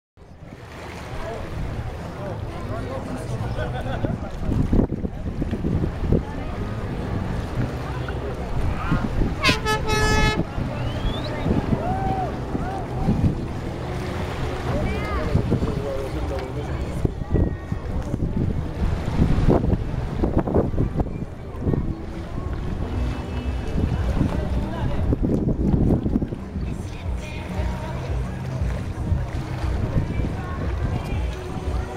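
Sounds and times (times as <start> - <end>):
distant speedboat engine droning: 0.4 - 31.3
people shouting and laughing: 2.9 - 4.6, 8.6 - 13.6
wind on microphone: 3.5 - 31.9
loud horn toot: 9.3 - 11.6.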